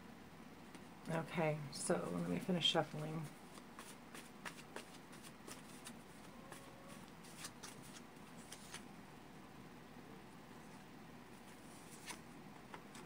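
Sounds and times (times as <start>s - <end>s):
cards being shuffled by hand: 3.4s - 8.9s, 11.4s - 13.0s.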